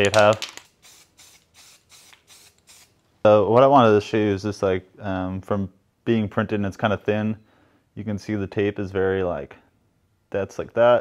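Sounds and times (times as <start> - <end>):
spray can hissing bursts: 0.5 - 3.0.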